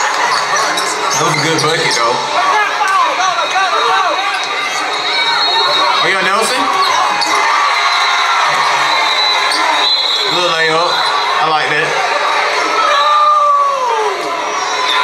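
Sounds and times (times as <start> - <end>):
voices of players and crowd: 0.0 - 15.0.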